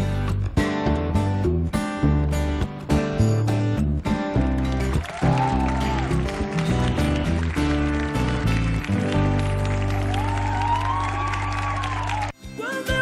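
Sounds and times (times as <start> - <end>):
acoustic guitars strummed: 0.0 - 10.1
bass notes: 0.0 - 12.3.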